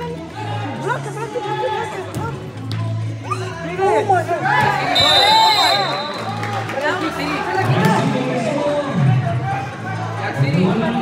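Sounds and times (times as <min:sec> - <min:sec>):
background music: 0:00.0 - 0:11.0
referee's whistle: 0:04.9 - 0:06.4.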